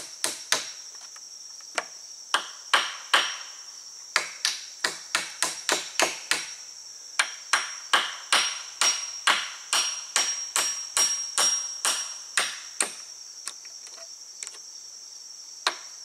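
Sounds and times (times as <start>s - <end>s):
hammer striking wood: 0.0s - 0.8s, 1.8s - 3.4s, 4.2s - 6.6s, 7.2s - 13.0s, 15.6s - 15.8s.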